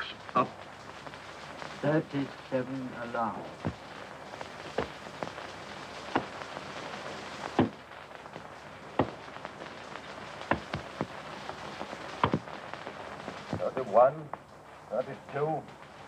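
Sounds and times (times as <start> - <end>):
film soundtrack hiss: 0.0 - 16.0.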